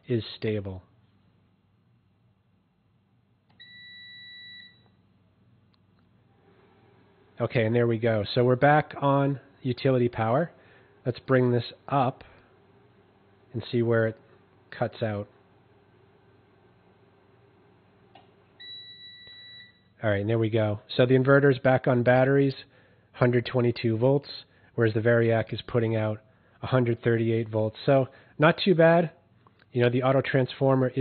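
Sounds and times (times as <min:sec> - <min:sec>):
inverter high beep: 0:03.6 - 0:05.0, 0:18.6 - 0:19.9.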